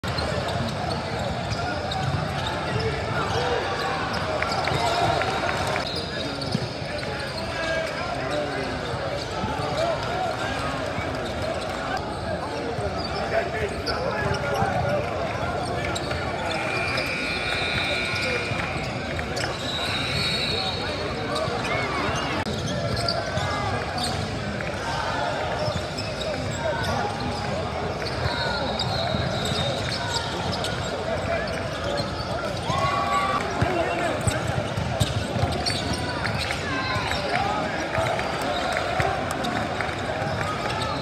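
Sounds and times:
sneakers squeaking: 0.0s - 24.8s, 25.4s - 41.0s.

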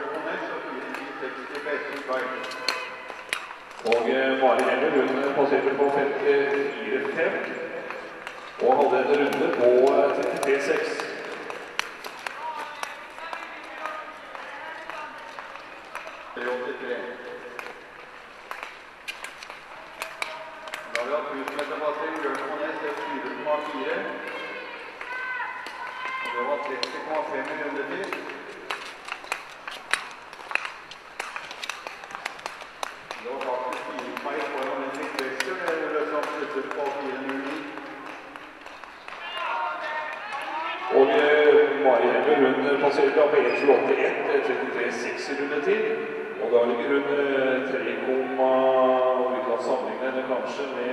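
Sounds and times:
person speaking: 8.6s - 18.0s, 19.6s - 28.8s.

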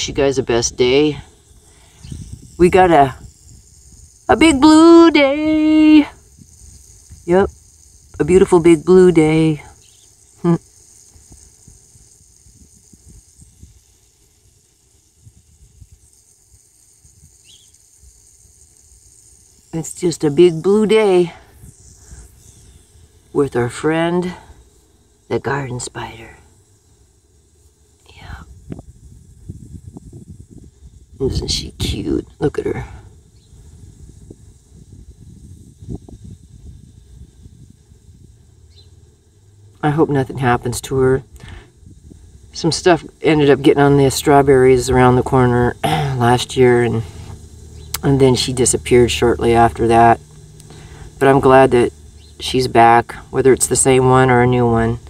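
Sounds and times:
high-pitched insect chirring: 0.0s - 55.0s.

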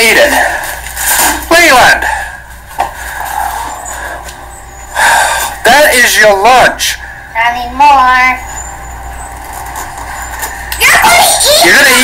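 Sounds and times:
faint constant hum: 0.0s - 12.0s.

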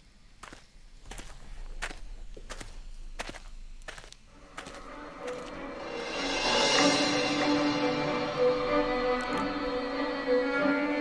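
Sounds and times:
footsteps through dry grass: 0.4s - 6.7s.

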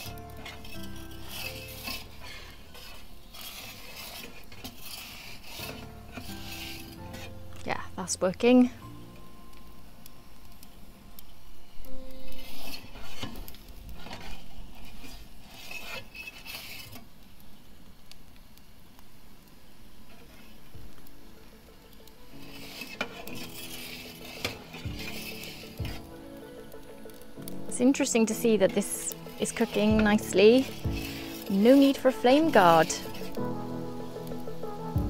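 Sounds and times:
background music: 0.0s - 4.2s, 5.4s - 13.2s, 20.8s - 35.0s
metal pizza peel clinking and scraping: 0.0s - 7.4s, 12.3s - 17.0s, 22.0s - 26.0s, 27.8s - 33.4s.

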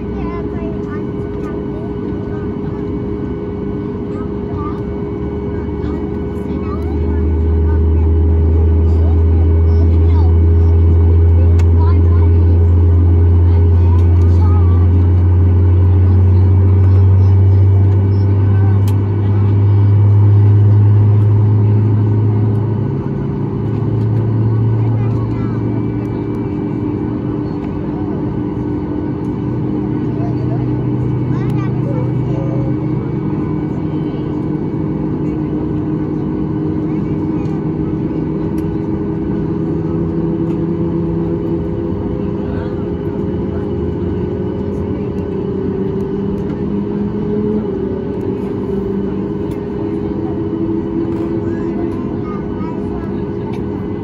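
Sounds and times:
aircraft engines droning: 0.0s - 54.0s
deep hum: 0.0s - 54.0s.

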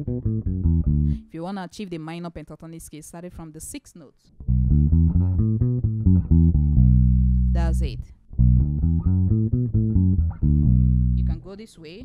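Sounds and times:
electric bass plucked notes: 0.0s - 1.3s, 4.4s - 12.0s.

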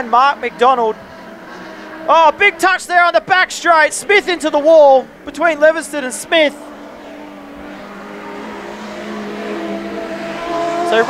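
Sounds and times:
race car engines running: 0.0s - 11.0s.

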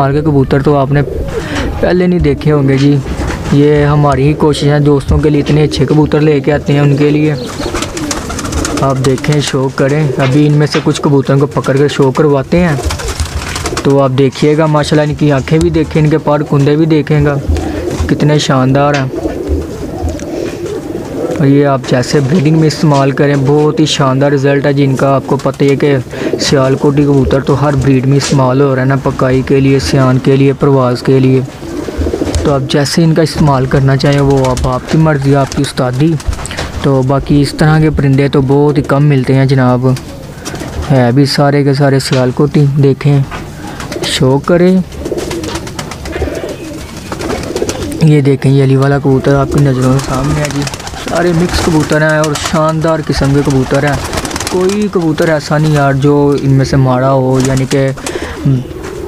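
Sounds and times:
pigeons cooing: 0.0s - 59.0s.

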